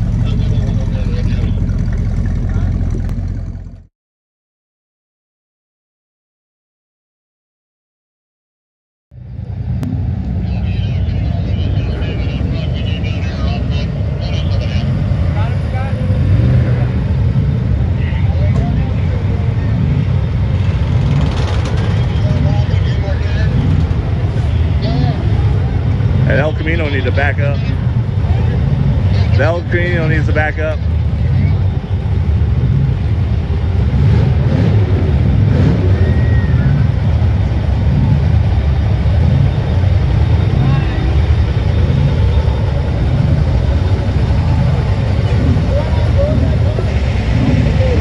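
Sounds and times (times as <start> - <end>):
people talking: 0.0 - 3.0, 10.3 - 17.0, 17.9 - 20.0, 21.7 - 31.7, 40.4 - 41.3, 44.2 - 48.0
truck diesel engine rumbling: 0.0 - 3.9, 9.2 - 48.0.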